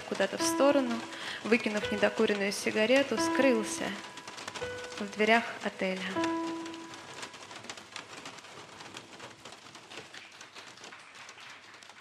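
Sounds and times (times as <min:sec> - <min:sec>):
crackly rain-like noise: 0:00.0 - 0:12.0
electric guitar notes ringing: 0:06.2 - 0:07.0.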